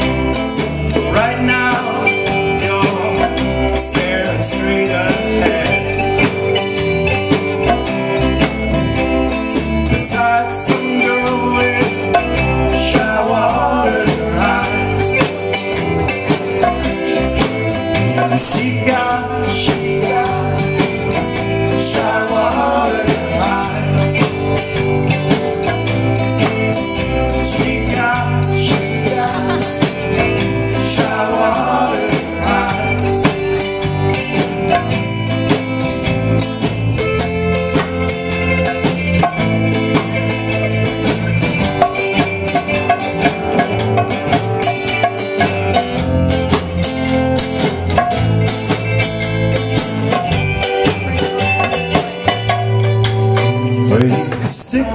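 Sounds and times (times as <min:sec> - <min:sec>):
conga drums: 0:00.0 - 0:54.9
electric bass: 0:00.0 - 0:54.9
mandolin: 0:00.0 - 0:54.9
strummed acoustic guitar: 0:00.0 - 0:54.9.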